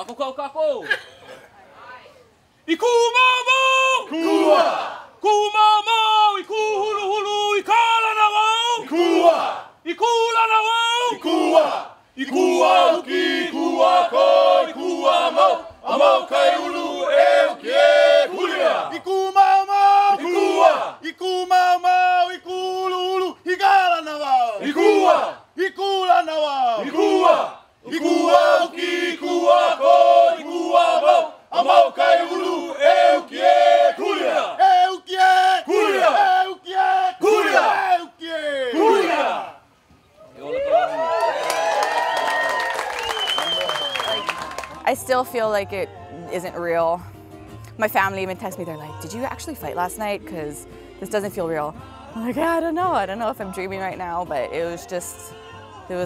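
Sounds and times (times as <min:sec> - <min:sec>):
group of voices chanting: 0:04.1 - 0:05.1, 0:08.8 - 0:09.7, 0:11.1 - 0:19.0, 0:20.1 - 0:21.0, 0:24.6 - 0:25.5, 0:26.7 - 0:39.6, 0:51.7 - 0:52.3.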